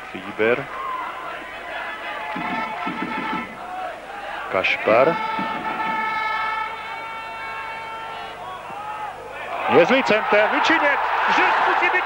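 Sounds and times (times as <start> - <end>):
stadium crowd noise: 0.0 - 12.0
horn long steady note: 2.3 - 3.6, 4.5 - 8.4.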